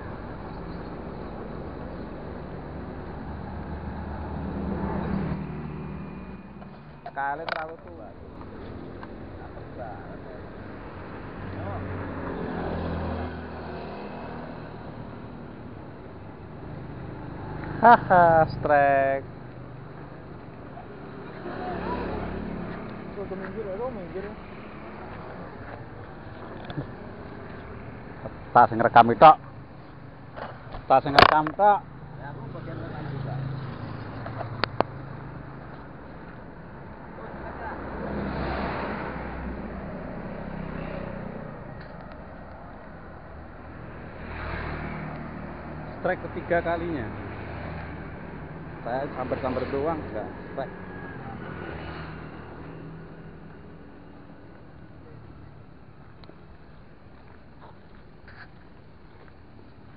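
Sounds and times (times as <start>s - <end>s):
vehicle passing by: 1.0s - 15.7s, 16.4s - 29.5s, 30.9s - 55.7s.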